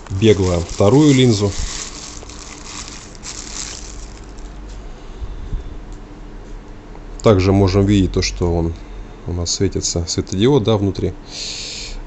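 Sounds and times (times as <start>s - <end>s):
plastic wrap rustling and crinkling: 0.0s - 4.8s.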